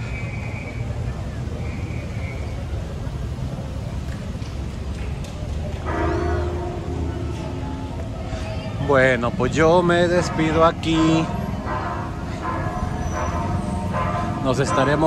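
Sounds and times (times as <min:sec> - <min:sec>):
car engines idling: 0:00.0 - 0:15.0.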